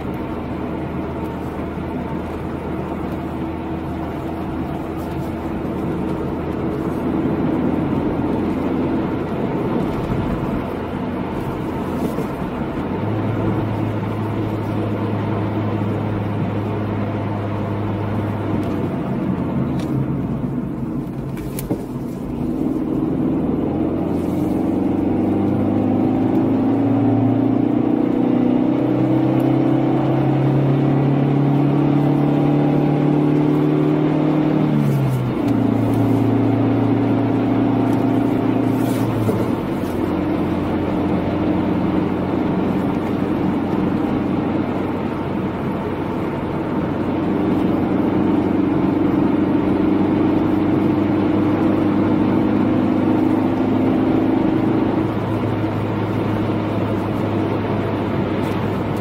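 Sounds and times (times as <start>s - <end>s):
car engine accelerating: 0.0s - 59.0s
tyre and road noise: 0.0s - 59.0s.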